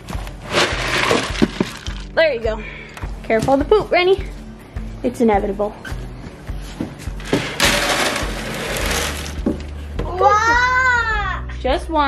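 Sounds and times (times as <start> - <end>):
dry feed pouring into tub: 0.4 - 2.0, 7.4 - 9.4
plastic scoop knocks: 0.6 - 2.0.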